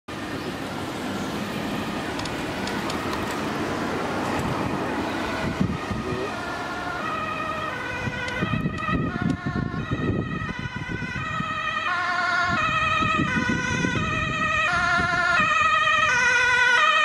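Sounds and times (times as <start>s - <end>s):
road traffic: 0.1s - 17.0s
ambulance siren: 0.5s - 17.0s.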